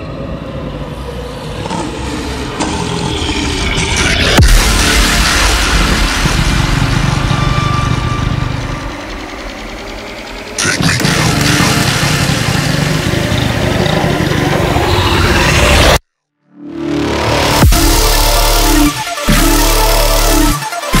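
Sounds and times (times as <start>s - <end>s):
dubstep track with heavy bass: 1.6s - 16.0s, 16.8s - 21.0s.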